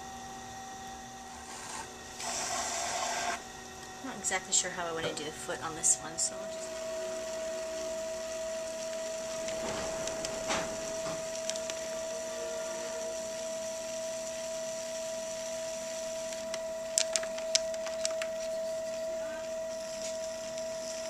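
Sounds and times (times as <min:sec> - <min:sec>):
pottery wheel running: 0:00.0 - 0:21.0.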